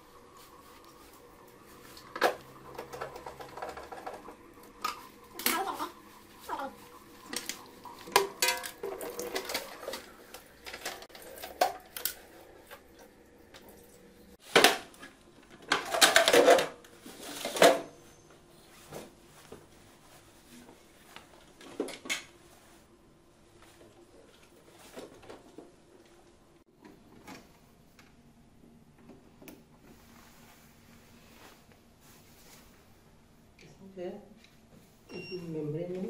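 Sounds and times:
plastic clattering: 0:14.5 - 0:17.9.

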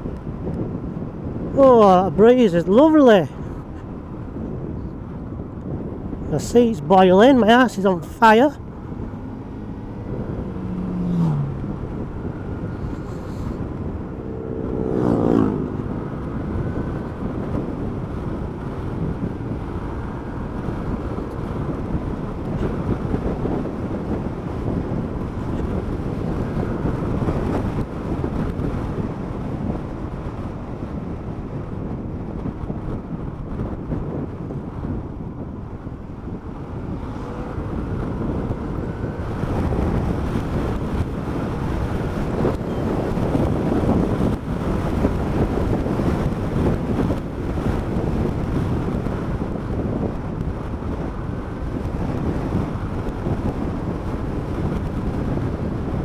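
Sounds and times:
road noise: 0:00.0 - 0:56.0
wind noise: 0:00.0 - 0:56.0
motorcycle engine running: 0:08.1 - 0:56.0.

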